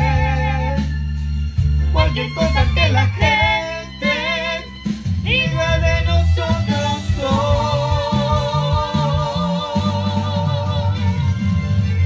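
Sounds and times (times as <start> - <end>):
person singing with vibrato: 0.0 - 1.0, 1.8 - 12.0
instrumental accompaniment: 0.0 - 12.0.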